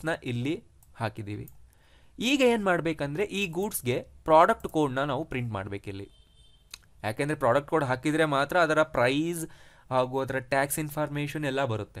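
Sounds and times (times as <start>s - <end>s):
man speaking: 0.0s - 1.5s, 2.2s - 6.2s, 7.0s - 12.0s.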